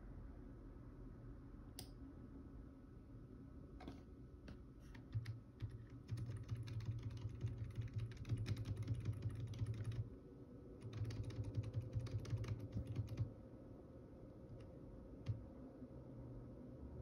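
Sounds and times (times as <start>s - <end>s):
rapid computer clicking: 5.0s - 10.1s, 10.8s - 13.3s, 14.5s - 15.4s.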